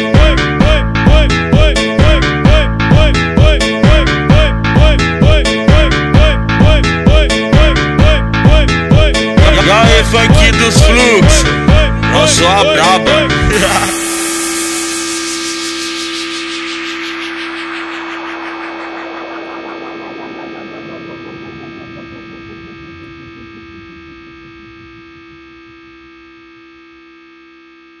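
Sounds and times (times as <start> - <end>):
held electronic chord ringing: 9.4 - 28.0.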